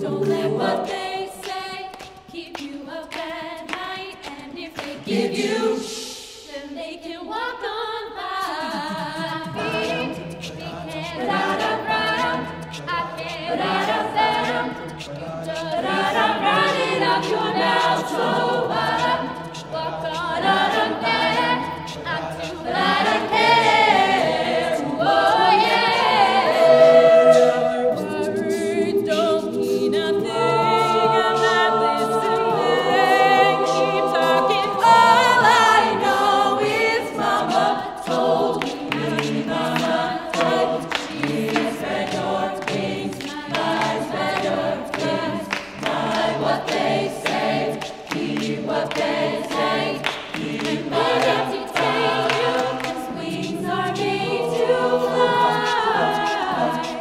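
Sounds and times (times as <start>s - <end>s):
group singing in harmony: 0.0s - 57.0s
vocal percussive beat: 0.0s - 57.0s.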